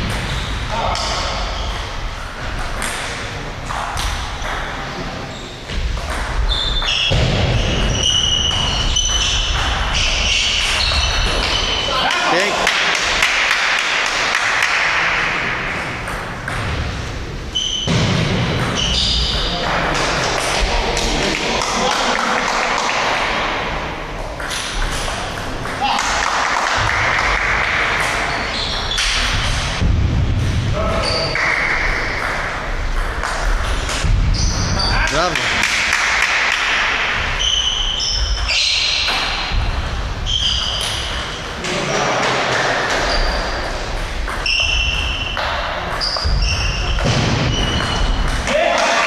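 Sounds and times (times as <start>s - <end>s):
reverberant hubbub: 0.0s - 49.0s
hall noise and voices: 7.1s - 37.5s, 39.3s - 45.9s, 47.0s - 49.0s.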